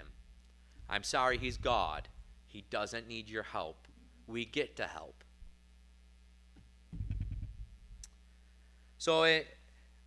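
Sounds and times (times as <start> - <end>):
low thuds on wooden pulpit: 0.8 - 2.3.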